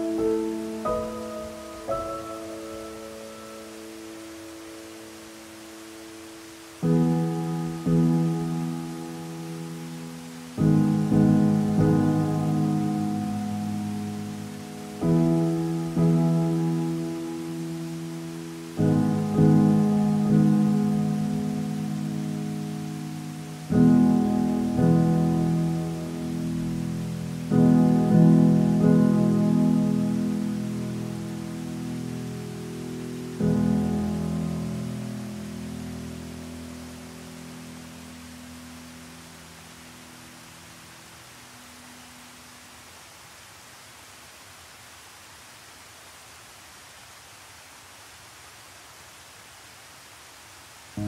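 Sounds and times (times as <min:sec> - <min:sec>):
solo piano chords: 0:00.0 - 0:42.2
rushing water: 0:00.0 - 0:51.0.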